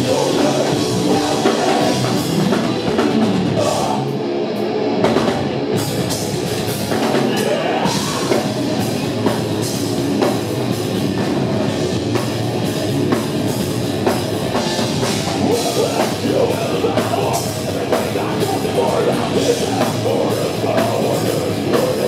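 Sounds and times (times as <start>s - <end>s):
distorted electric guitars: 0.0s - 22.0s
pounding drum kit: 0.0s - 22.0s.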